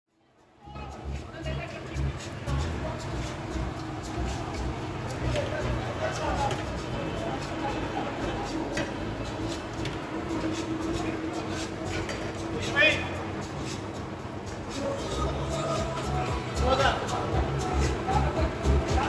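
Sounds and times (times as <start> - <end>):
background voices: 0.6 - 19.0.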